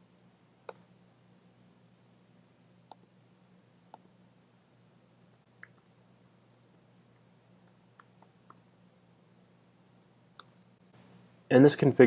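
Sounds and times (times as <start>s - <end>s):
faint low hum: 0.0s - 12.0s
mouse and keyboard clicks: 10.4s - 10.6s.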